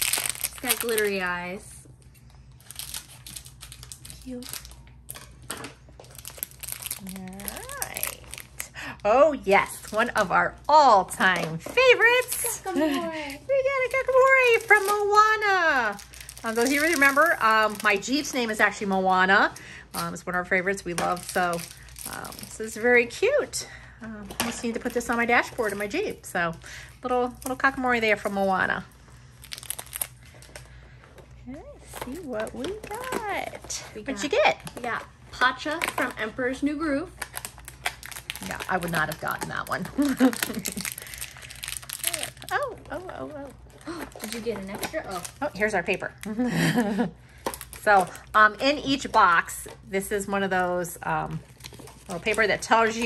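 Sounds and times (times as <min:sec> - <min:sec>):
plastic wrapper crinkling: 0:00.0 - 0:23.2, 0:24.3 - 0:53.0.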